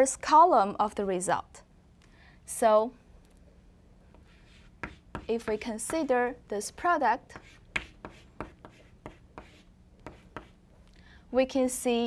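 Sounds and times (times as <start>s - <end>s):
chalk tapping and scraping on chalkboard: 4.2s - 6.2s, 7.3s - 10.6s.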